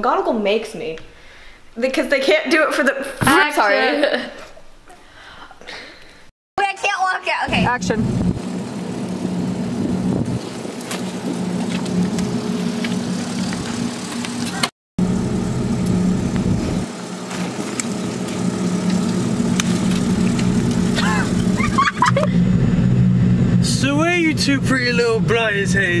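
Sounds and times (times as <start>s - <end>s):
low engine-like hum: 7.5s - 26.0s.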